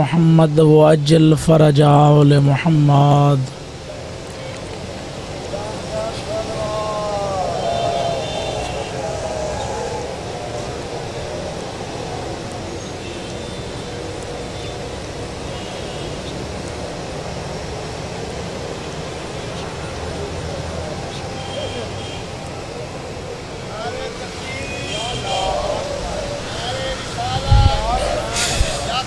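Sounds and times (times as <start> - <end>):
low rumbling background noise: 0.0 - 29.0
voice gliding downward: 5.5 - 12.7, 23.7 - 29.0.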